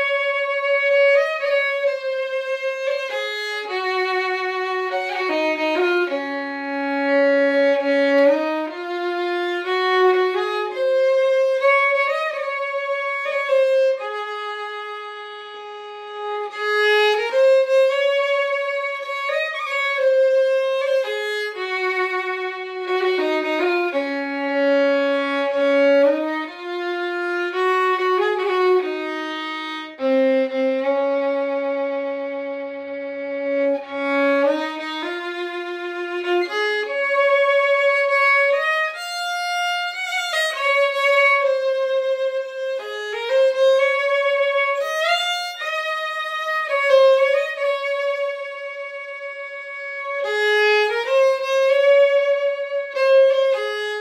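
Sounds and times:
solo fiddle slow melody: 0:00.0 - 0:54.0.

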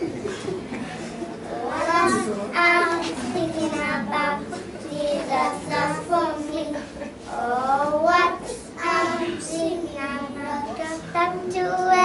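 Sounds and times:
girls singing together: 0:01.3 - 0:12.0.

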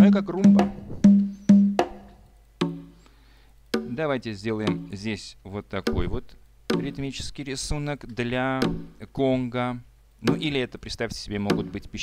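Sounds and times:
conga drum hits: 0:00.0 - 0:02.9, 0:03.8 - 0:04.0, 0:04.7 - 0:05.0, 0:05.9 - 0:07.0, 0:08.6 - 0:08.9, 0:11.5 - 0:11.7.

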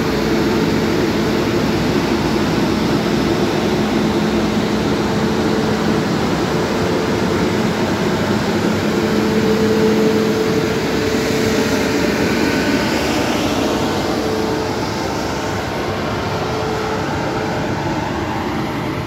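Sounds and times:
electric locomotive rolling past: 0:00.0 - 0:19.0.

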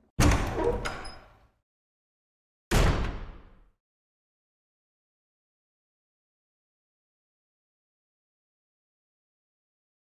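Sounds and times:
heavy wooden door impact: 0:00.2 - 0:01.1.

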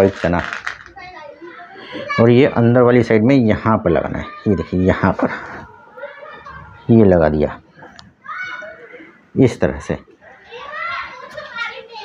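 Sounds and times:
child talking: 0:00.8 - 0:02.6, 0:03.9 - 0:07.1, 0:08.2 - 0:09.0, 0:10.4 - 0:12.0.

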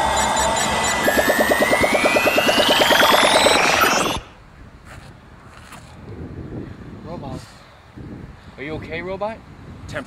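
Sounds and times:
electronic buzzing pulse: 0:00.0 - 0:04.4
falling high tones: 0:00.0 - 0:04.4
rising electronic whine: 0:00.0 - 0:04.4.

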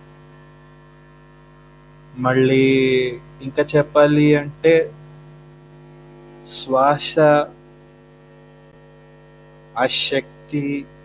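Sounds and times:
electrical mains hum: 0:00.0 - 0:11.0
man speaking: 0:02.2 - 0:04.9, 0:06.5 - 0:07.6, 0:09.8 - 0:10.9.

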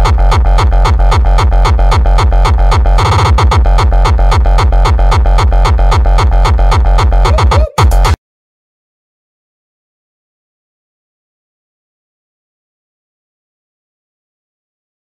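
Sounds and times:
deep bass: 0:00.0 - 0:08.2
electronic dance music: 0:00.0 - 0:08.2
heavy kick drum: 0:00.0 - 0:08.2.

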